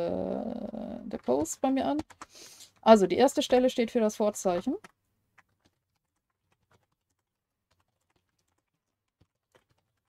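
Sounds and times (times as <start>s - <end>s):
computer keyboard typing: 0.9s - 10.0s.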